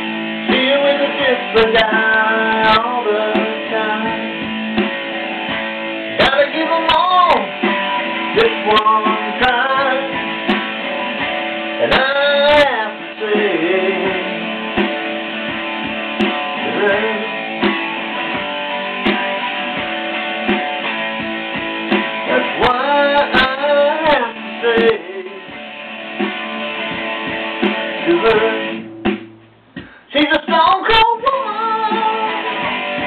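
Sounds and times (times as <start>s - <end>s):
person singing: 0.0s - 4.6s, 6.1s - 10.8s, 11.8s - 15.0s, 16.5s - 17.7s, 22.2s - 25.6s, 28.0s - 28.8s, 30.0s - 33.0s
electric guitar with bent notes: 0.0s - 33.0s.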